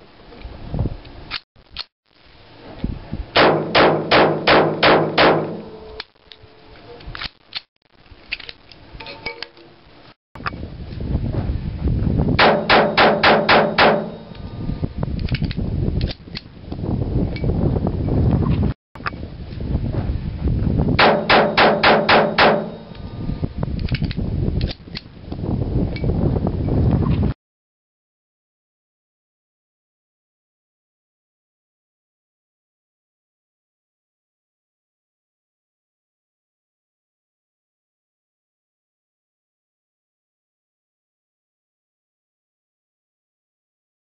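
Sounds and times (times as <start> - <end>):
pistol shots with ringing tail: 3.4 - 5.8, 12.4 - 14.3, 21.0 - 22.9
gun handling metallic clicks: 15.2 - 16.5, 23.8 - 25.1.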